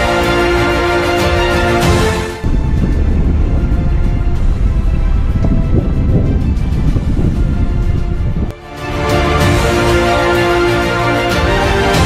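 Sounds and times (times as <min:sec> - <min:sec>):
music: 0:00.0 - 0:12.0
road noise from dirt road: 0:02.4 - 0:08.5
wind buffeting camera: 0:02.4 - 0:08.6.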